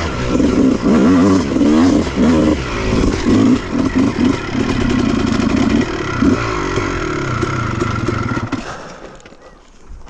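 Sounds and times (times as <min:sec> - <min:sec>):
dirt bike engine revving: 0:00.0 - 0:08.8.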